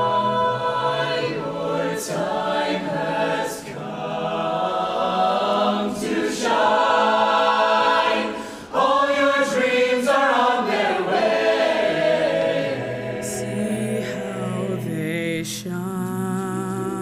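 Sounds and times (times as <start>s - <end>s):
chorus singing in close harmony: 0.0s - 15.2s.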